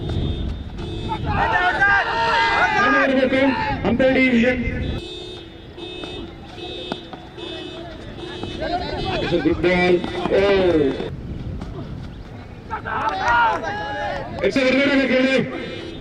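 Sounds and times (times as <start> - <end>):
men shouting: 1.1 - 4.4, 7.4 - 11.1, 12.7 - 15.8.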